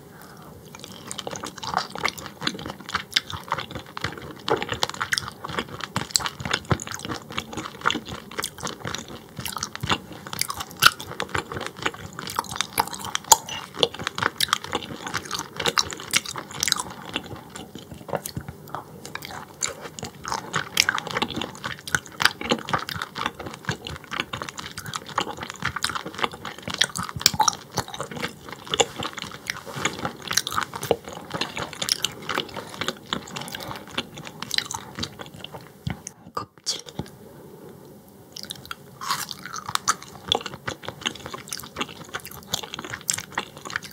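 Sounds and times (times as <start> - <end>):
chewing with mouth clicks: 0.2 - 37.1, 38.3 - 43.9.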